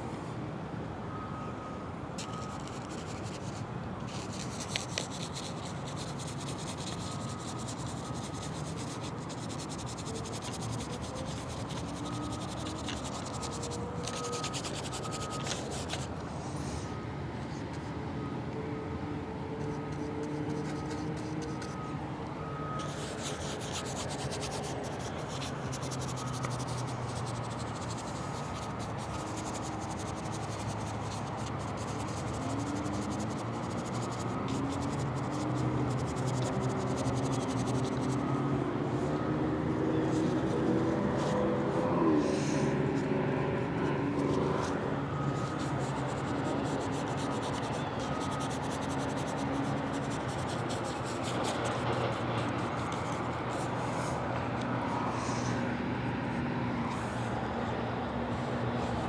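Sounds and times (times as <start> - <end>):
bristle brush scrubbing canvas: 2.2 - 16.1, 22.8 - 38.2, 45.4 - 54.1.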